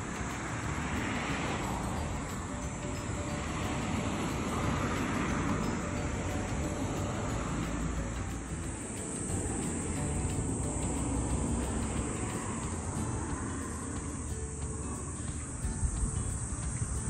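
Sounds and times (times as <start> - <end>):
insects droning: 0.0 - 17.0
wind rumble on microphone: 0.0 - 17.0.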